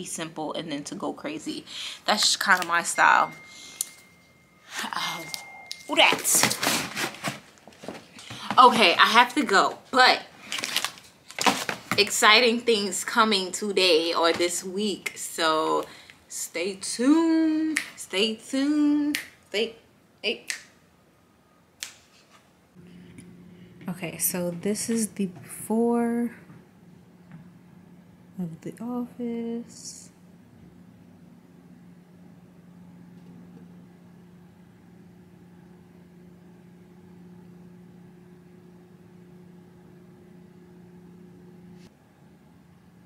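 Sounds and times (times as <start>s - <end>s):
low mechanical hum with hiss: 0.0s - 43.0s
finger snaps: 19.1s - 19.4s.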